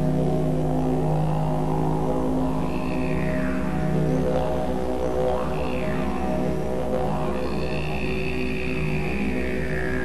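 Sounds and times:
didgeridoo drone: 0:00.0 - 0:10.0.

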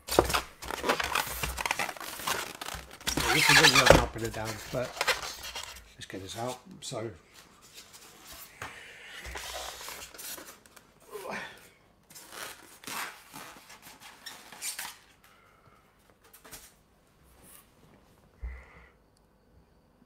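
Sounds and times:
foam packing rubbing: 0:00.0 - 0:05.8, 0:12.1 - 0:14.8
scrapes and rustles: 0:00.1 - 0:06.6.

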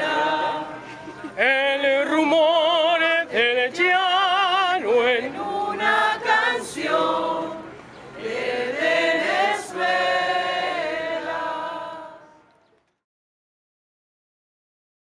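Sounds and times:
choir-like singing: 0:00.0 - 0:12.5.

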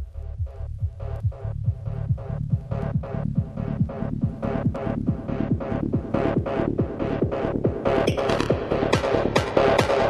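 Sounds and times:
kick drum thumps: 0:00.0 - 0:10.0
electronic trance music: 0:00.4 - 0:10.0.

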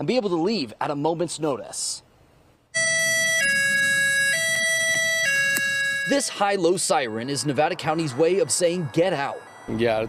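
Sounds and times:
two-tone high-low siren: 0:02.8 - 0:10.0.

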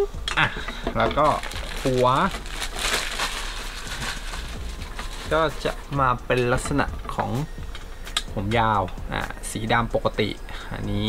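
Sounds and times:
plastic packaging crinkling: 0:01.1 - 0:05.9.

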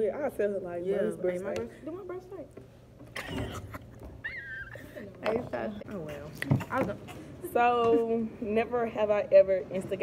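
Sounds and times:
woman squealing with laughter: 0:03.2 - 0:05.1.

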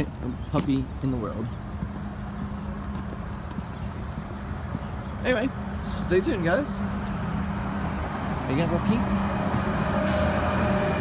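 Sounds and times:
dog claws ticking on concrete: 0:00.0 - 0:09.8.

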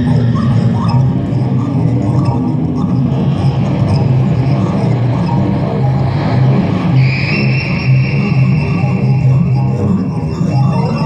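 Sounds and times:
low pulsing drone: 0:00.0 - 0:11.0
steady high tone: 0:00.0 - 0:11.0.

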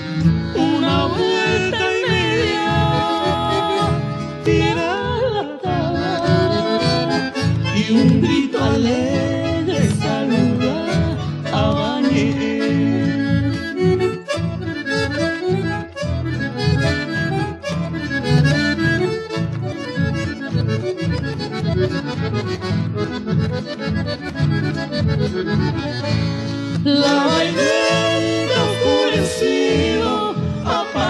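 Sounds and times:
accordion melody: 0:00.0 - 0:31.0
guitar accompaniment: 0:00.0 - 0:31.0.

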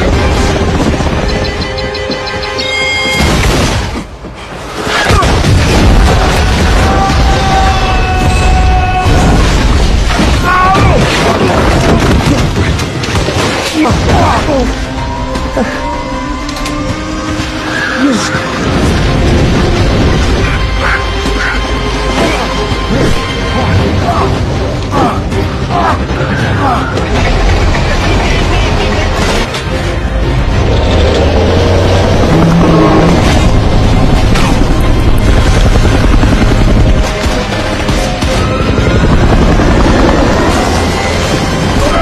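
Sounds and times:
helicopter engines and rotor: 0:00.0 - 0:03.3, 0:14.7 - 0:42.0
film music: 0:00.0 - 0:42.0
heavy rumble: 0:18.4 - 0:42.0.

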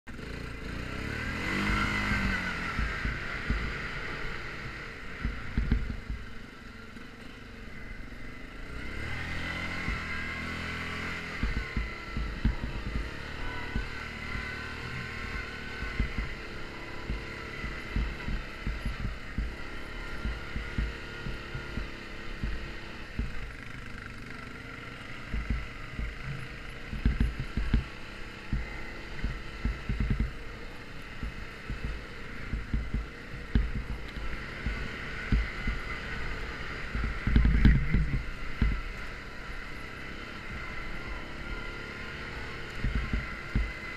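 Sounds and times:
atv engine revving: 0:00.1 - 0:43.9
low thumps from rough trail: 0:00.1 - 0:43.9.

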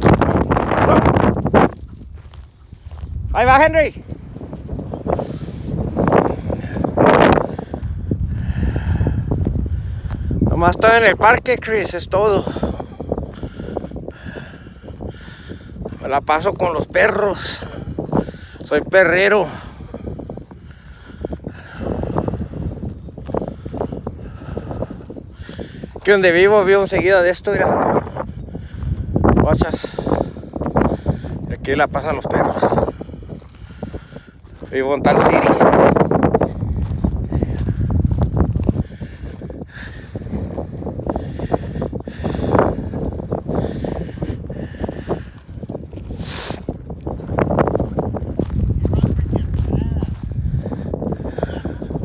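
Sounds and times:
footsteps crunching through dry grass: 0:00.0 - 0:52.0
wind buffeting microphone: 0:00.0 - 0:52.0.

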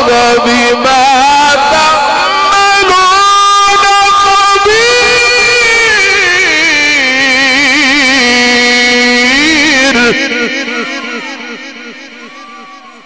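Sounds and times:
man chanting through microphone: 0:00.0 - 0:13.0.

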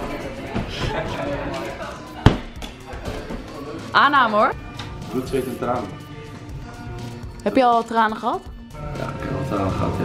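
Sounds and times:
background music: 0:00.0 - 0:10.0
exercise ball thump: 0:02.2 - 0:02.7.

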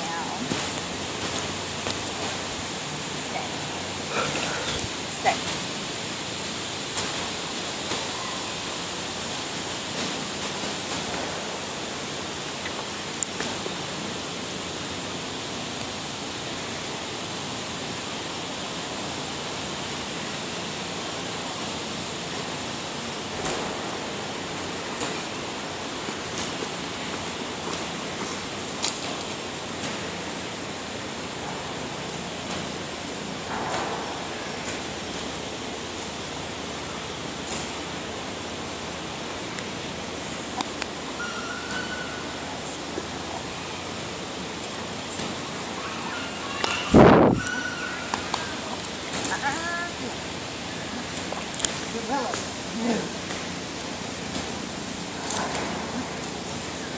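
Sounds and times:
outdoor background hiss: 0:00.0 - 0:56.9.

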